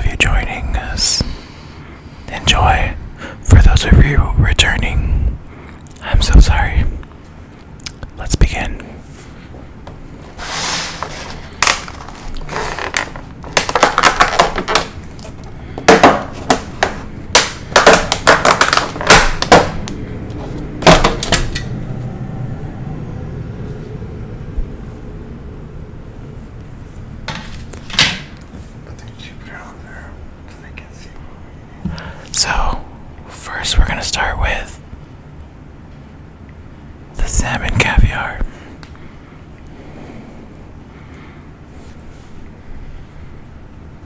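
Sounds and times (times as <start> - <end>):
plastic packaging clicks and crinkles: 11.0 - 20.0.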